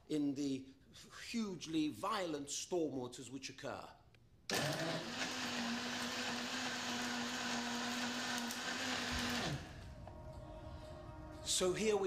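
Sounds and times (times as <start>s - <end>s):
blender motor spinning down: 4.5s - 9.8s
electric blender running: 4.5s - 9.8s.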